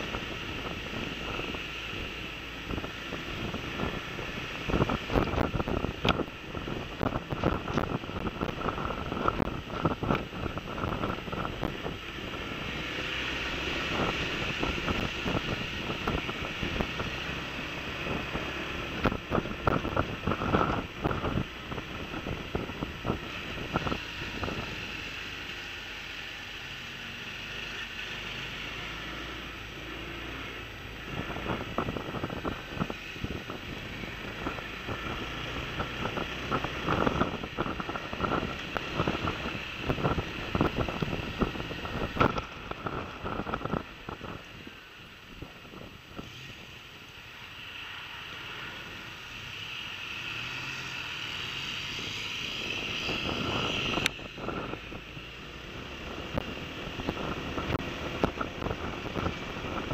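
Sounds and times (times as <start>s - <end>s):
wind buffeting microphone: 0.0s - 25.1s, 30.6s - 46.7s, 51.8s - 59.9s
scooter ride rumble: 0.0s - 59.9s.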